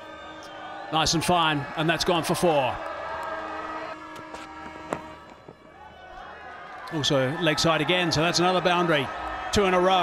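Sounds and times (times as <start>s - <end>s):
crowd noise: 0.0s - 10.0s
cricket bat striking ball: 4.1s - 5.6s.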